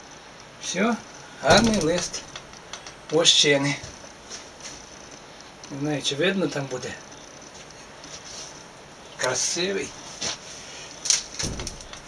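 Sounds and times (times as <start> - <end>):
dull thump: 11.4 - 12.0.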